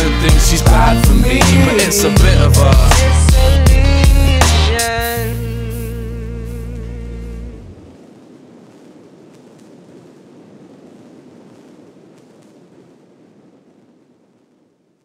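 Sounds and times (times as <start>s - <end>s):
hip-hop vocal note with vibrato: 0.0s - 7.7s
bass line: 0.0s - 7.8s
steady rough noise: 0.0s - 8.0s.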